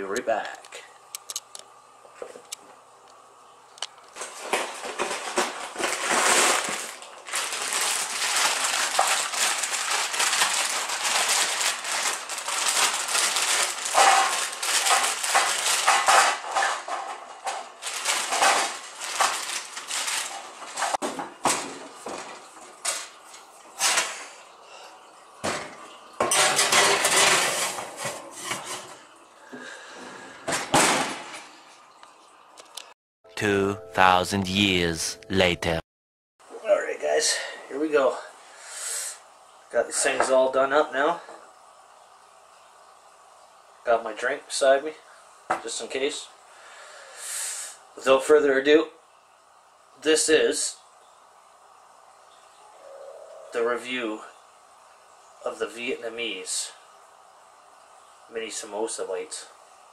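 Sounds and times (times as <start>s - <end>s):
frozen food clattering on tray: 4.2s - 16.9s
plastic bag crinkling: 5.9s - 15.9s, 17.8s - 20.7s.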